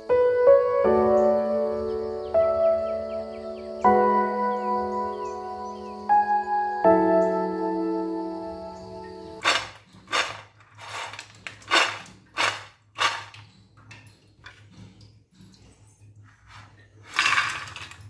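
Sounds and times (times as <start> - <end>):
background music: 0.0 - 9.4
crunching fried peanuts: 9.4 - 13.4.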